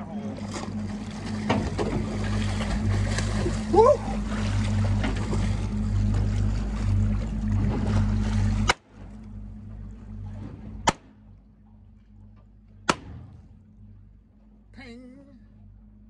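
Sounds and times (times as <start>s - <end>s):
boat engine running: 0.0s - 16.0s.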